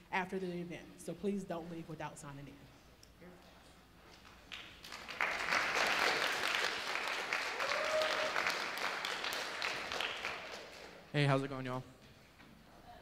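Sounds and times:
audience applauding: 4.4 - 11.1.

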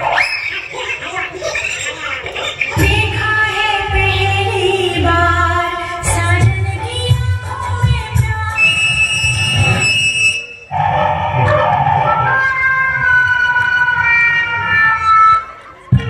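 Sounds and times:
backing music over loudspeakers: 0.0 - 16.0
siren-like sliding tones: 8.7 - 15.7.

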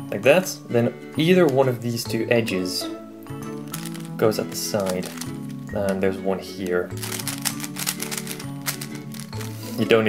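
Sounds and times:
background music held notes: 0.0 - 10.0
plastic puzzle clicking: 3.7 - 6.0, 6.6 - 9.6.

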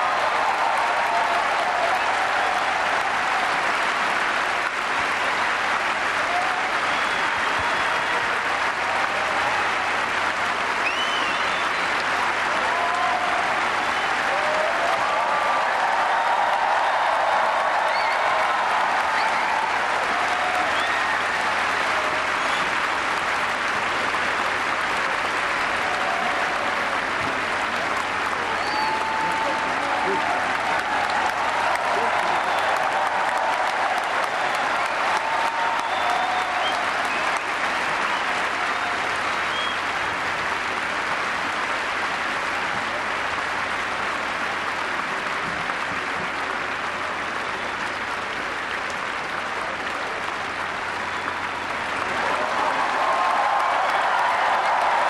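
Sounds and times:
stadium audience applauding: 0.0 - 55.0.

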